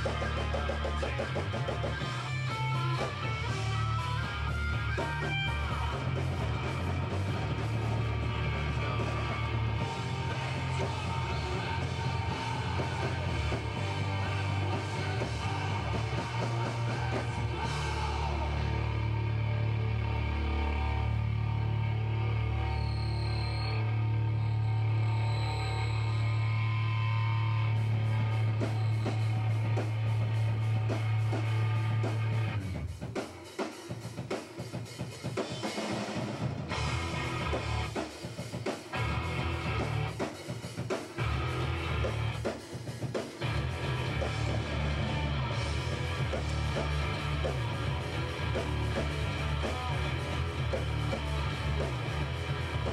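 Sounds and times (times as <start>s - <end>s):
drum and cymbal hits: 0.0s - 18.7s, 28.0s - 52.9s
noise rock band playing: 0.0s - 52.9s.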